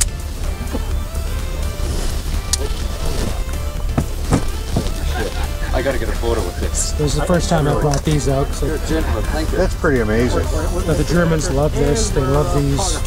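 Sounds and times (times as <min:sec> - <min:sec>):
background music: 0:00.0 - 0:13.0
steady low rumble: 0:00.0 - 0:13.0
faint voices of people: 0:02.6 - 0:13.0.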